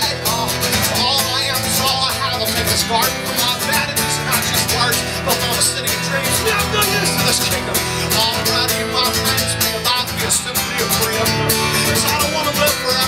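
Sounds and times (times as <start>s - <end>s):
acoustic guitar strumming: 0.0s - 13.0s
electric bass notes: 0.0s - 13.0s.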